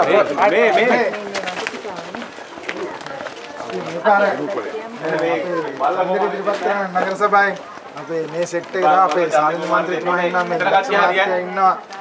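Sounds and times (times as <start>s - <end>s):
people talking in low voices: 0.0s - 12.0s.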